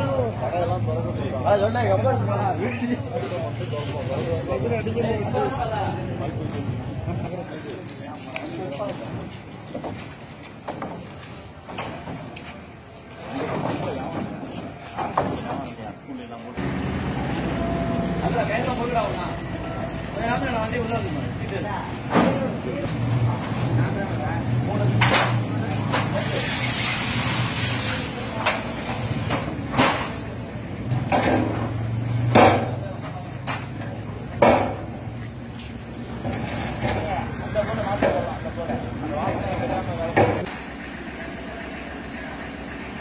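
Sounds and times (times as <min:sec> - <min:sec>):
people talking: 0:00.0 - 0:09.9, 0:10.9 - 0:40.5
low street hum: 0:00.0 - 0:43.0
voices: 0:00.0 - 0:43.0
hiss: 0:26.1 - 0:28.9.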